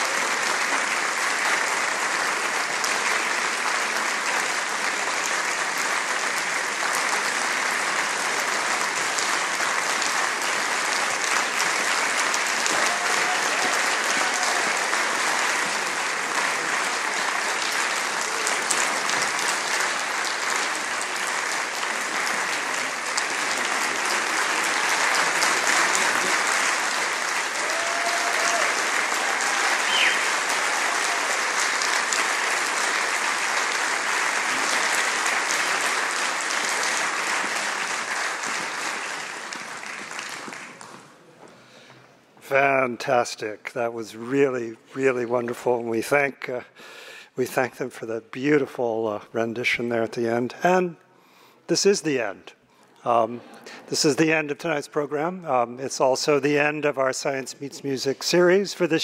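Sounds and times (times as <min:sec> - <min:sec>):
audience applauding: 0:00.0 - 0:41.8
faint whoops: 0:12.7 - 0:14.8, 0:27.6 - 0:31.5.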